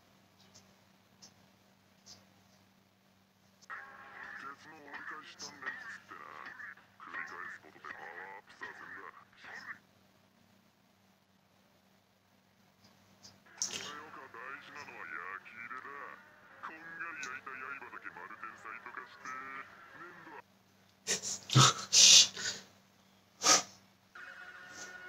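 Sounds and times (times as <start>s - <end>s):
muffled cartoon dialogue: 3.7s - 9.9s, 13.5s - 20.5s.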